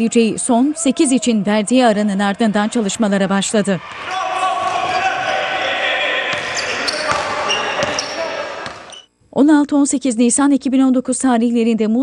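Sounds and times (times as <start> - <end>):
voices calling and echoing: 0.0 - 12.0
basketball bouncing: 6.3 - 9.0.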